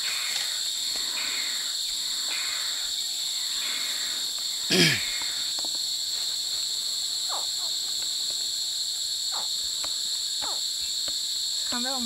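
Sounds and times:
night insect chorus: 0.0s - 12.0s.

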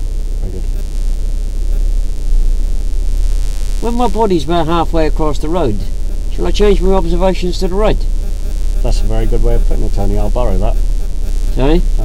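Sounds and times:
car engine low rumble: 0.0s - 12.0s.

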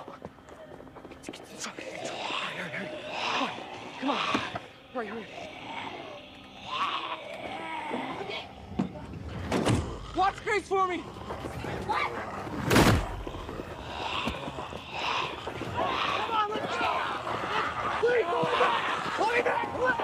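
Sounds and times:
hurried strained voices: 1.2s - 20.0s.

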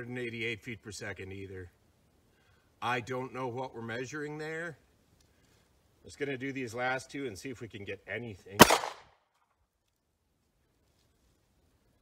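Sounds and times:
pistol shot: 8.6s - 9.1s.

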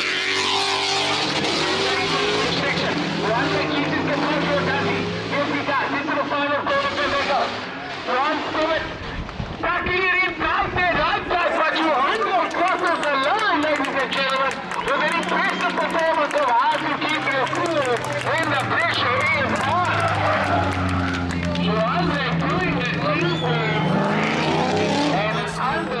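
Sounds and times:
car engine at high revs: 0.0s - 9.4s, 12.1s - 26.0s
commentator speaking: 1.4s - 9.0s, 9.6s - 26.0s.

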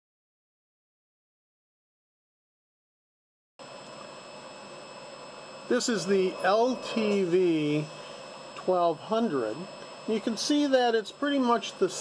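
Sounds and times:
steady hiss and hum: 3.6s - 12.0s.

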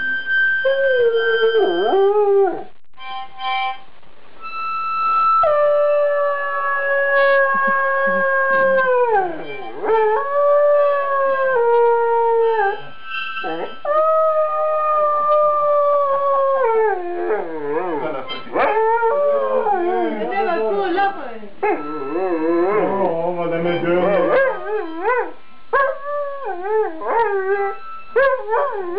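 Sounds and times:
dog howling: 5.4s - 21.0s, 21.6s - 28.9s.

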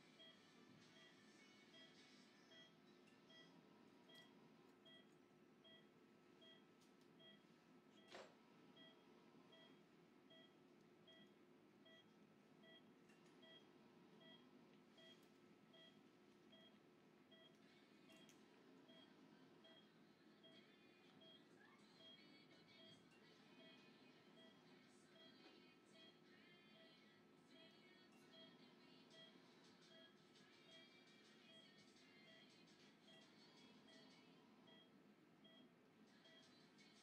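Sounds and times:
patient monitor beeping: 1.0s - 8.2s, 8.8s - 21.4s, 23.6s - 25.4s, 34.6s - 35.7s.

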